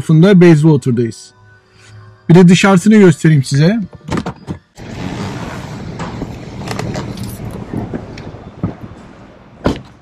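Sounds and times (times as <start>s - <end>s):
passing road traffic: 4.8s - 10.0s.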